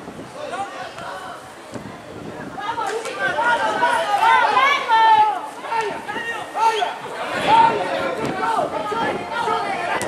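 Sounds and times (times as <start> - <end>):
people shouting and calling: 2.3 - 10.0.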